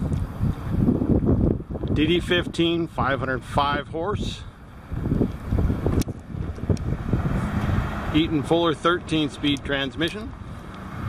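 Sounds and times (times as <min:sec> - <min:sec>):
diesel truck engine rumble: 0:00.0 - 0:11.0
wind buffeting microphone: 0:00.0 - 0:11.0.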